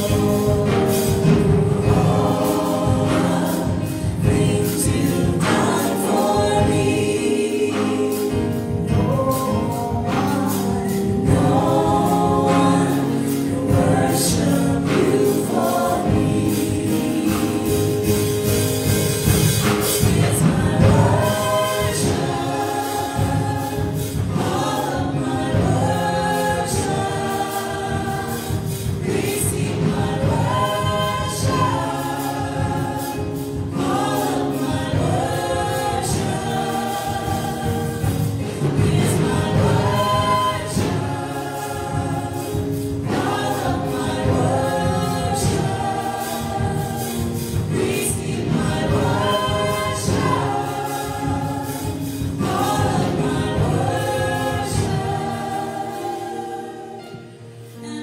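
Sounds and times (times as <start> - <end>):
electric keyboard chords: 0.0 - 58.0
women singing gospel in harmony: 0.0 - 58.0.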